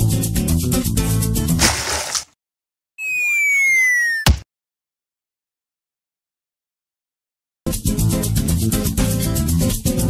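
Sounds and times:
descending cartoon whistle: 0:03.0 - 0:04.3.

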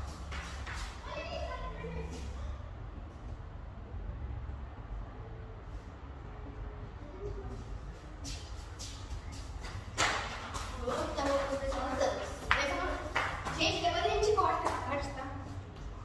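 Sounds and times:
young girls' voices: 0:00.8 - 0:02.7, 0:10.6 - 0:15.6.

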